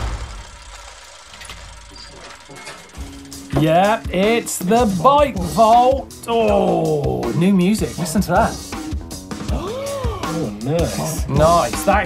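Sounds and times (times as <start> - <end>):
metal gears turning with ratchet clicks: 0.2 - 4.8.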